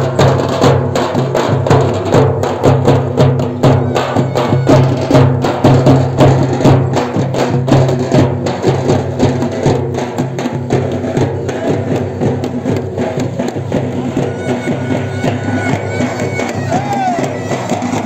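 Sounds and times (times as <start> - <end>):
drum beating quickly: 0.0 - 18.0.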